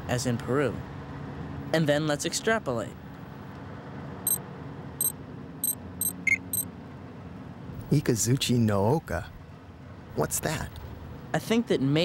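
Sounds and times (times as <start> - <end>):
short electronic computer beeps: 5.0 - 6.6.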